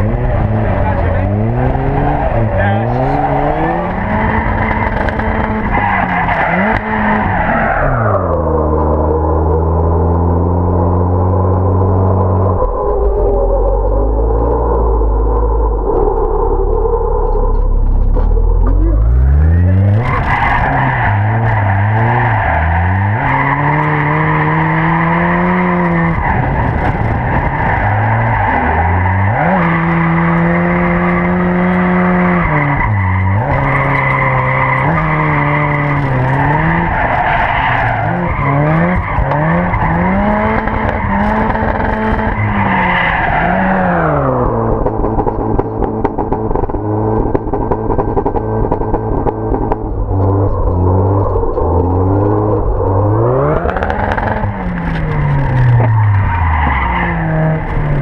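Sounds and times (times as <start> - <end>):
car engine revving hard: 0.0 - 12.0, 18.8 - 58.0.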